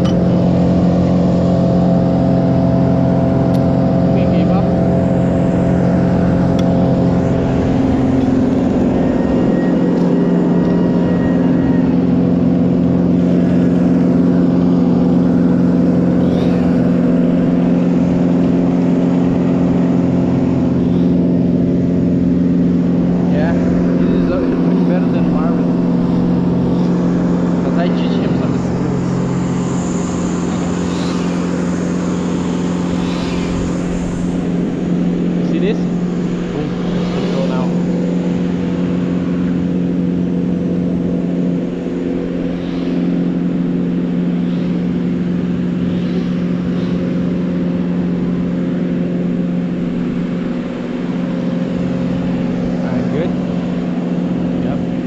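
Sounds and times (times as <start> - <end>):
engine running steadily: 0.0 - 55.0.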